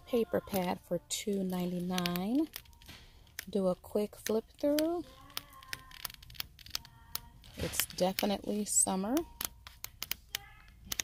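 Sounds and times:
paper pad pages flipping: 0.4 - 11.0.

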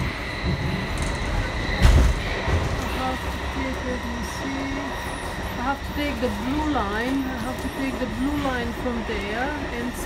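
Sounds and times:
faint high whine: 0.0 - 10.0
metro carriage rumble: 0.0 - 10.0.

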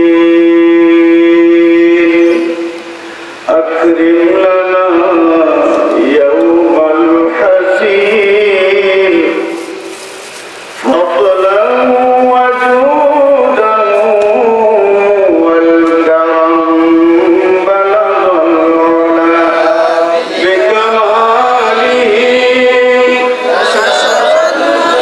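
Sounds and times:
man chanting into a microphone: 0.0 - 9.9, 10.8 - 25.0.

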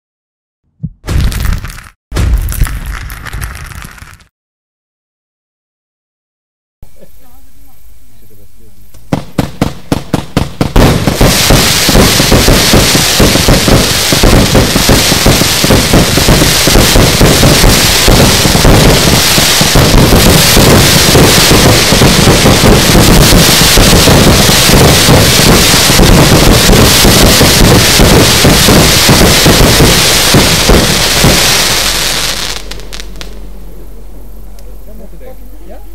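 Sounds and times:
firework barrage firing: 1.0 - 4.2, 9.0 - 33.5
firework hiss: 9.1 - 33.4.

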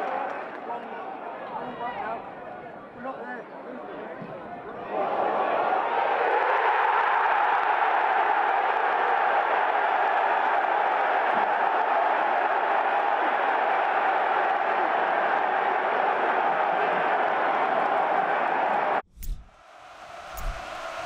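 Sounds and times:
crowd clapping: 0.0 - 1.1, 5.9 - 19.0
crowd cheering: 0.0 - 2.7, 3.9 - 19.0, 19.6 - 21.0.

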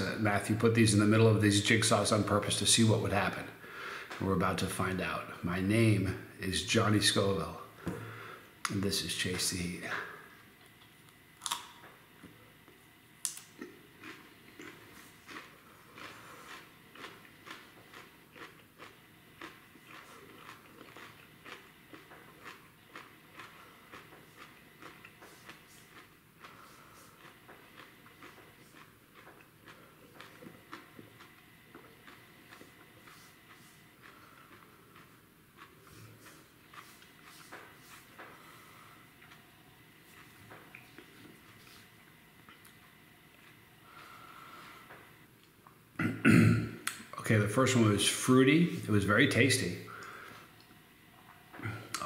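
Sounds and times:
person chewing crunchy pepper: 10.6 - 12.0, 12.6 - 44.6.

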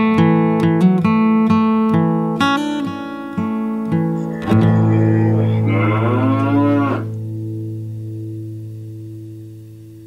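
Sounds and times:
strummed acoustic guitar chord: 0.2 - 9.1
cow mooing: 4.2 - 7.2.

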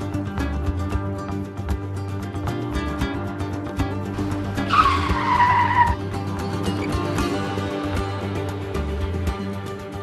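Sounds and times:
background music: 0.0 - 10.0
tyre screeching: 4.5 - 7.2.

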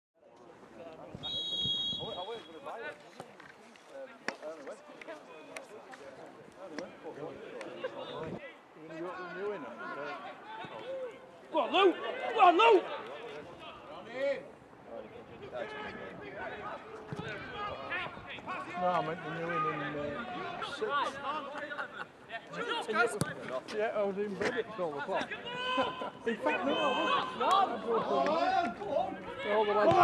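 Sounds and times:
spectators talking and calling out: 0.5 - 30.0
players shouting: 9.0 - 14.1, 15.4 - 23.5, 24.5 - 30.0.

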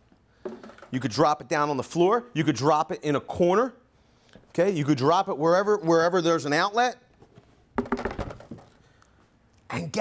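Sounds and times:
plastic chargers set down on table: 0.5 - 0.9, 7.8 - 8.7.

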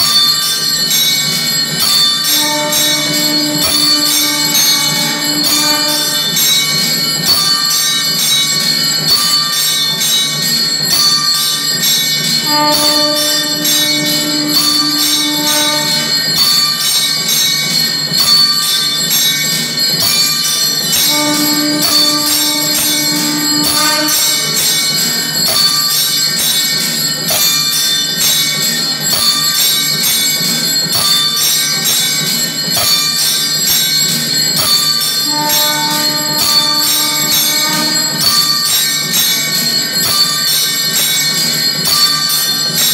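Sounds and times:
temple bells clanging: 0.0 - 42.9
conch shell blown: 2.2 - 6.5, 12.4 - 16.6, 21.0 - 24.6, 35.2 - 38.7.

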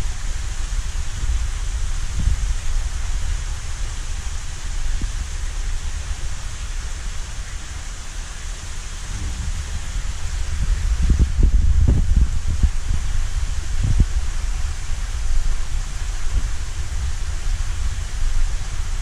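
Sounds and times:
aquarium water rushing and hissing: 0.0 - 19.0
low rumble: 9.0 - 17.8.

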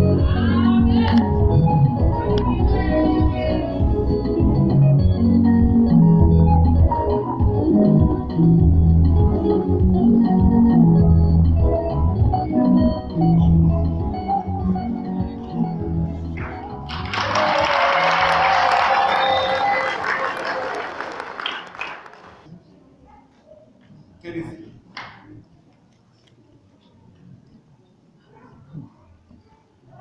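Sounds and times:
organ-like keyboard music: 0.0 - 17.2
congregation applauding: 16.4 - 22.4.

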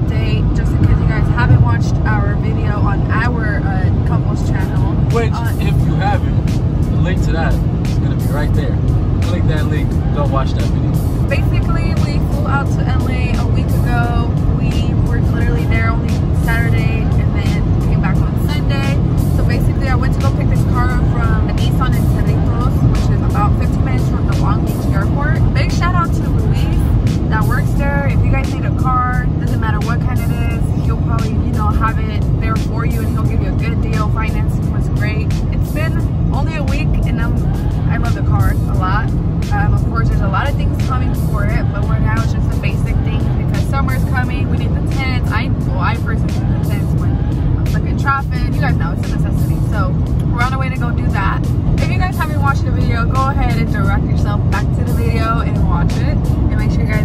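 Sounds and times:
woman speaking: 0.0 - 6.0, 11.3 - 57.0
car road and engine drone: 0.0 - 57.0
music: 0.0 - 57.0.

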